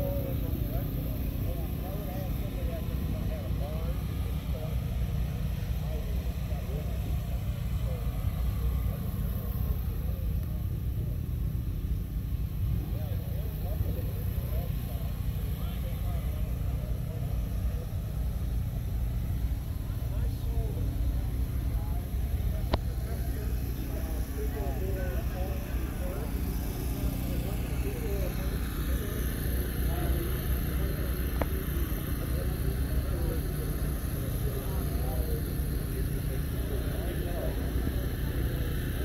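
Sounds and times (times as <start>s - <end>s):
people talking at a distance: 0.0s - 39.0s
steady low rumble: 0.0s - 39.0s.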